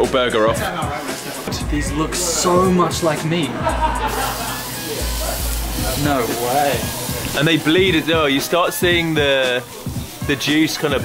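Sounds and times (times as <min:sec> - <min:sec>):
background music: 0:00.0 - 0:11.0
low voices: 0:00.0 - 0:11.0
patty sizzling on a grill: 0:00.6 - 0:01.6, 0:03.6 - 0:11.0.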